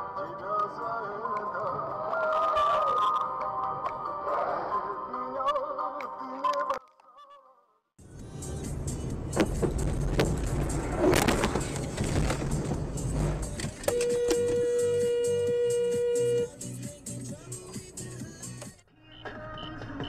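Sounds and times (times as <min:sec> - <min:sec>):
road and engine noise: 0:08.0 - 0:18.2
vehicle horn blast: 0:13.9 - 0:16.6.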